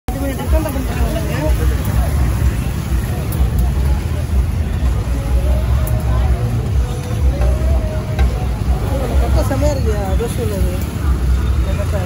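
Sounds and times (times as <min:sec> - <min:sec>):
people talking: 0:00.1 - 0:12.0.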